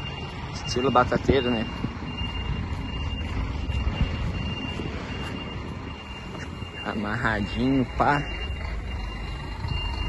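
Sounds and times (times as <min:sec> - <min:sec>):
diesel engine rumbling: 0:00.0 - 0:10.0.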